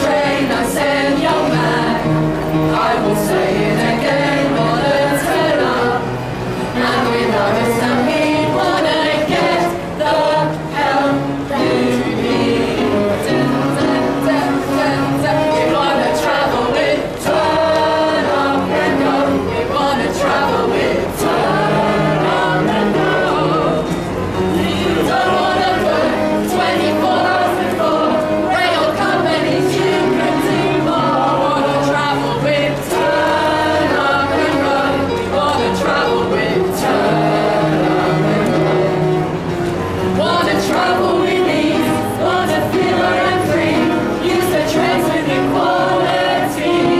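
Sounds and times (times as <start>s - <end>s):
group singing without instruments: 0.0s - 46.9s.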